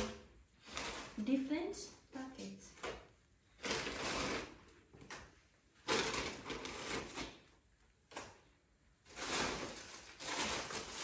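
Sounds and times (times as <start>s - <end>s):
plastic packaging rustling: 2.4s - 11.0s.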